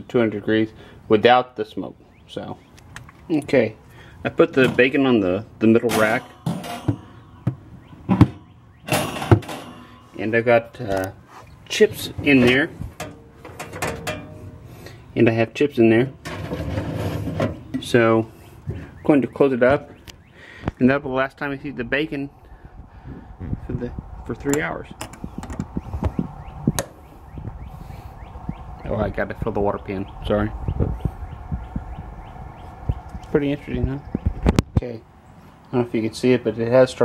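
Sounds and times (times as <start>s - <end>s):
metal scraping: 5.7s - 10.6s, 11.3s - 15.1s, 15.9s - 18.4s
sharp knocks on smoker racks: 5.9s - 10.2s.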